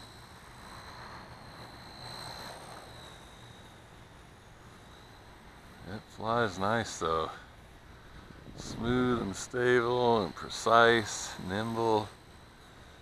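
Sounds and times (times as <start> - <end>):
rc helicopter rotor whine: 0.0 - 13.0.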